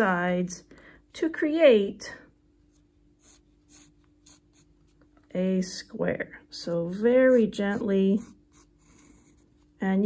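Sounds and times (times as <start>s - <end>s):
pencil scratching on paper: 2.8s - 5.0s, 6.7s - 9.8s.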